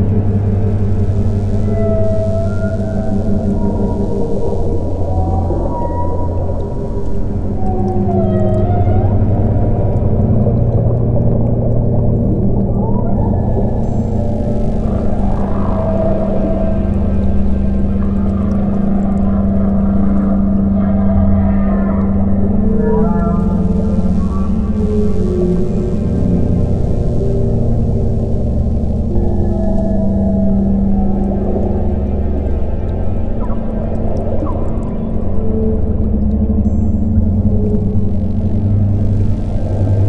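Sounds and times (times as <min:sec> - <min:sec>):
low synthesizer drones: 0:00.0 - 0:40.0
whale calls: 0:00.1 - 0:40.0.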